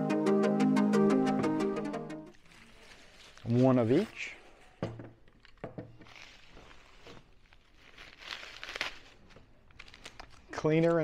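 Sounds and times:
bubble wrap crinkling: 2.3 - 4.7, 5.3 - 11.0.

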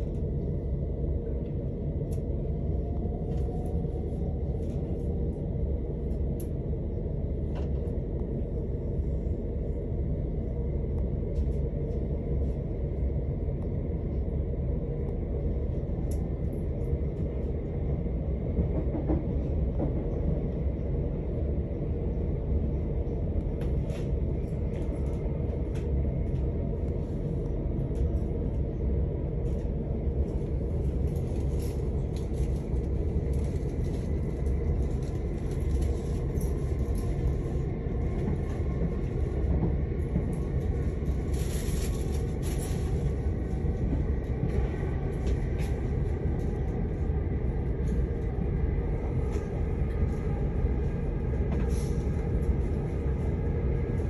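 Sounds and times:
train rumbling on track: 0.0 - 54.0.

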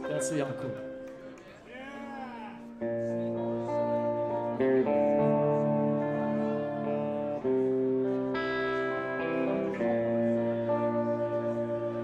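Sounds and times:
electric guitars: 0.0 - 12.0
guitar chord ringing: 0.0 - 12.0.

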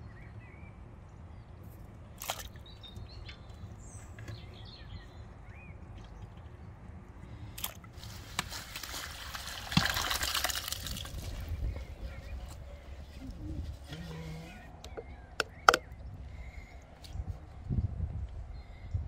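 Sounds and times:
water splashing into a colander: 8.8 - 11.4.

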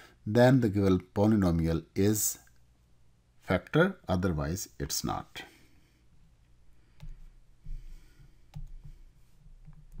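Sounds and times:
computer mouse clicks: 8.5 - 8.9.

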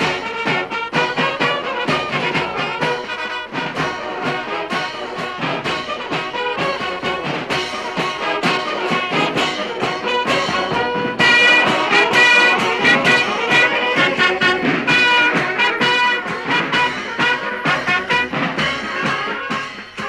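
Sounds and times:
brass band music: 0.0 - 20.0.

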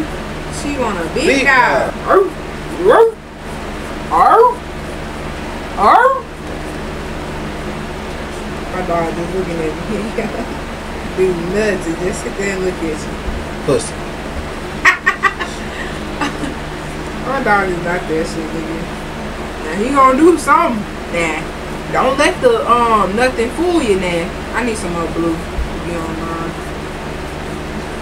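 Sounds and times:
steady low hum: 0.0 - 28.0
woman imitating dog bark: 5.8 - 6.3
woman cackling laugh: 14.8 - 16.6.

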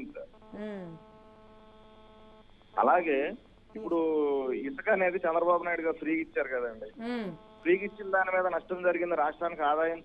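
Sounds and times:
caller speaking: 0.0 - 1.0, 3.8 - 9.9
electrical hum on telephone line: 0.0 - 10.0.

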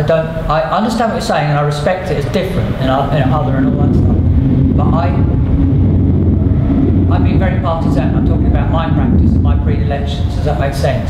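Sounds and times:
man speaking: 0.0 - 4.2, 4.8 - 5.3, 7.1 - 11.0
low background rumble: 0.0 - 11.0.

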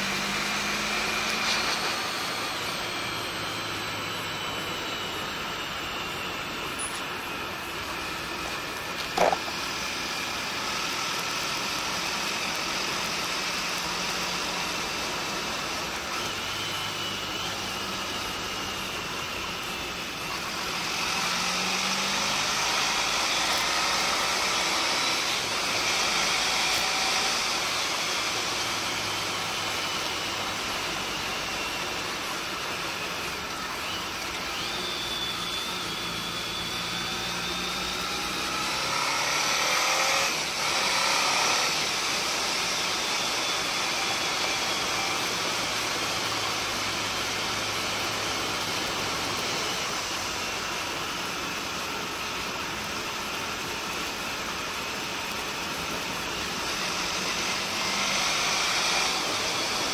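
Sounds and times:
motorcycle engine running: 2.2 - 15.6.

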